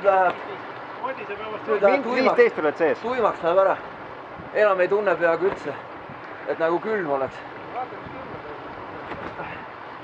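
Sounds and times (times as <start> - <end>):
flowing water rushing: 0.0 - 10.0.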